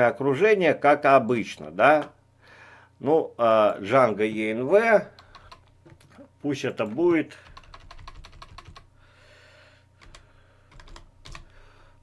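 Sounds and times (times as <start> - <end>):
computer keyboard typing: 5.1 - 6.2, 6.8 - 8.9, 10.0 - 11.5.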